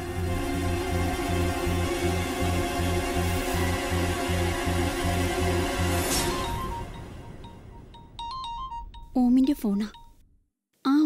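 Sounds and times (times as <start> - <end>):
background music: 0.0 - 10.2
mobile phone ringtone beeps: 6.5 - 10.2.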